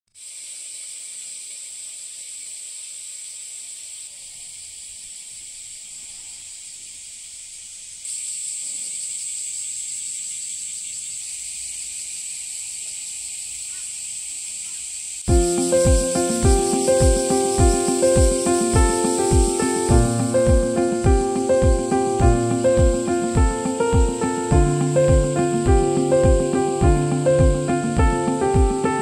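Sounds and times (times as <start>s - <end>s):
cicadas droning chorus: 0.2s - 29.0s.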